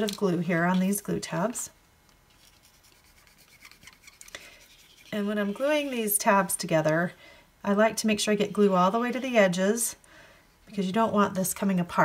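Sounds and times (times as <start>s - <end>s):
glue bottle tip scratching card: 2.4s - 5.6s.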